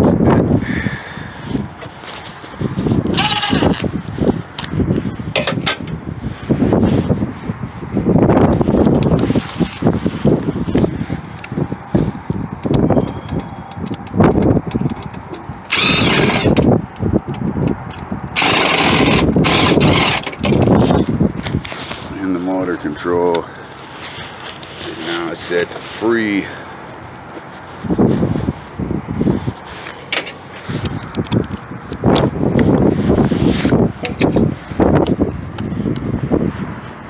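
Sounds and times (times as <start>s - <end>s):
knocks and rattles of handling: 4.4s - 6.0s, 12.6s - 15.7s.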